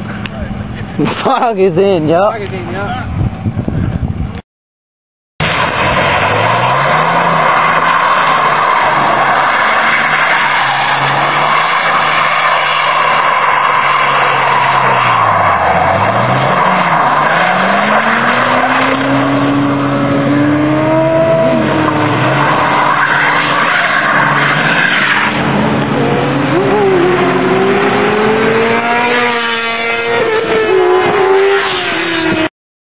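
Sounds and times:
diesel truck engine revving: 5.4 - 10.2
tyres squealing on asphalt: 5.4 - 32.5.

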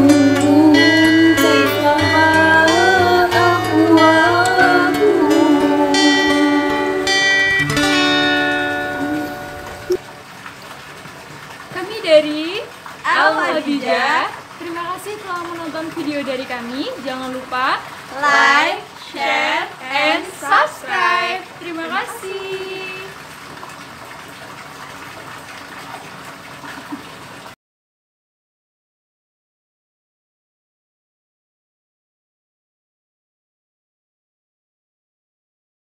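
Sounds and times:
strummed acoustic guitar chord: 0.0 - 10.0.

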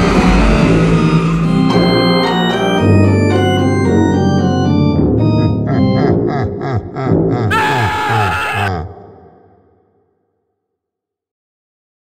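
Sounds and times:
low pulsing beat: 0.0 - 7.4.

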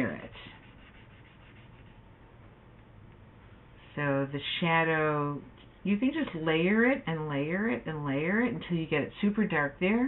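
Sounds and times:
rubbing on paper: 0.0 - 2.0.

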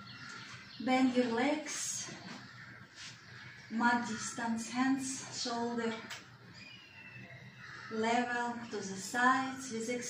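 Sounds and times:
faint bird calls: 0.0 - 10.0.

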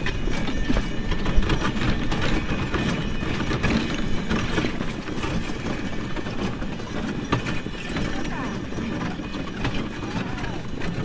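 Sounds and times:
harness and sleigh rattling: 0.0 - 11.0
horse hoofbeats on snow: 0.0 - 11.0.

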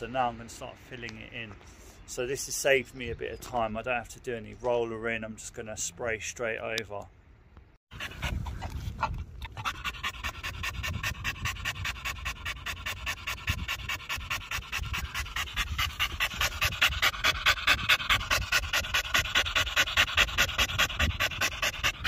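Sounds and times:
dog panting: 7.9 - 22.0.

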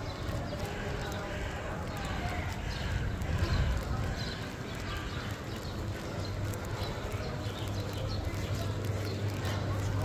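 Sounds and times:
wind rumble on microphone: 0.0 - 9.8
footsteps on stone paving: 0.0 - 10.0.

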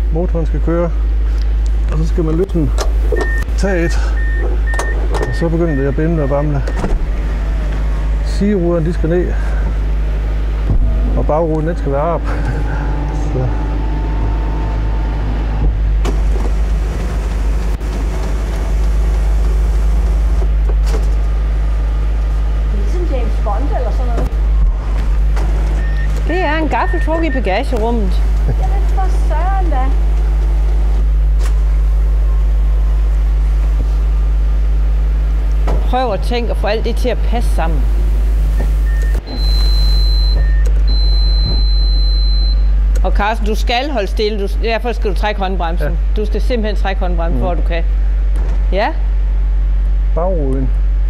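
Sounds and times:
car engine idling: 0.0 - 51.0
roof mechanism motor: 2.3 - 43.1
high-pitched warning tone: 3.1 - 6.9, 10.8 - 15.7, 25.8 - 28.2, 38.6 - 42.8
electric roof mechanism: 12.3 - 22.4.

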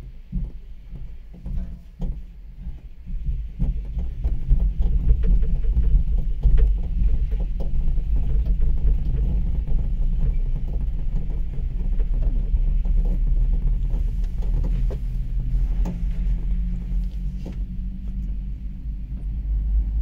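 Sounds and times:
cable lift rumble: 0.0 - 20.0
rattles and clicks: 0.2 - 20.0.

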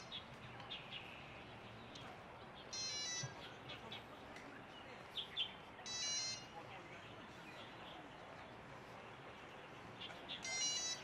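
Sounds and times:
soft bird chirps: 0.0 - 11.0
bird calling: 2.7 - 3.6, 10.3 - 11.0.

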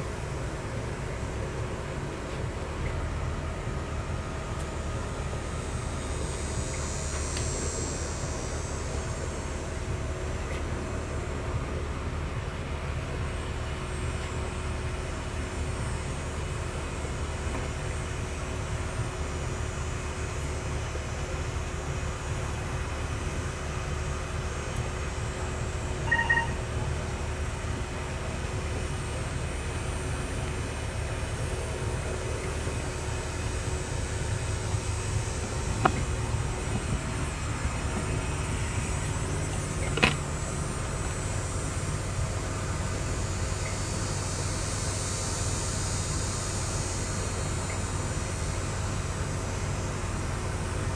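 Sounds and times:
low outdoor rumble: 0.0 - 50.9
short high beep: 26.0 - 26.6.

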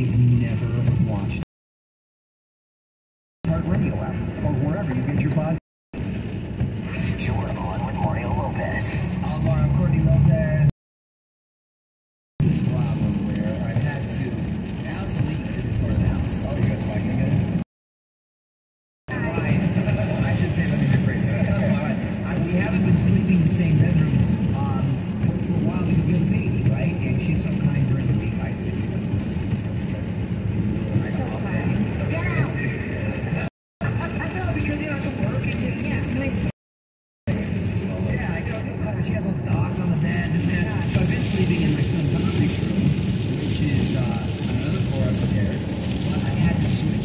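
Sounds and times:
muffled radio talk: 0.0 - 1.4, 3.4 - 5.6, 6.8 - 10.7, 12.6 - 17.6, 19.1 - 30.1, 30.8 - 36.5, 37.3 - 47.0
tyres and engine rumble: 0.0 - 1.5, 3.4 - 10.8, 12.4 - 17.7, 19.1 - 36.6, 37.3 - 47.0.

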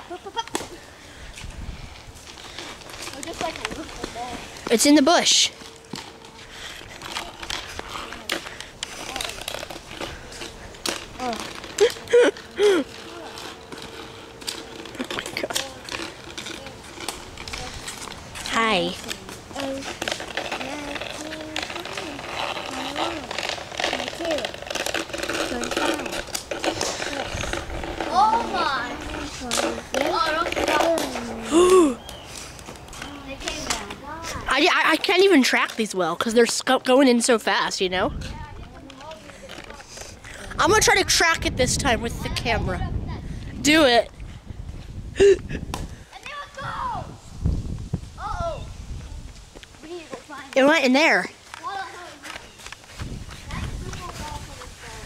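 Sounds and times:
children's voices calling: 2.0 - 37.5, 38.2 - 43.9, 45.2 - 47.2, 48.2 - 55.0.

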